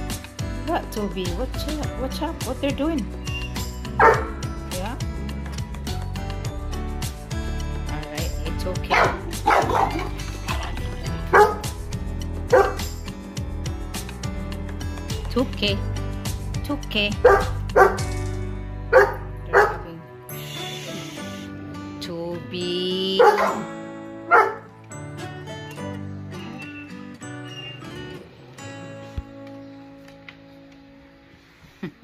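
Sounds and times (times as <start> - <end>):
background music: 0.0 - 32.0
dog barking: 4.0 - 4.4, 8.9 - 11.8, 12.5 - 12.9, 17.2 - 18.1, 18.9 - 20.0, 23.2 - 23.7, 24.3 - 24.7.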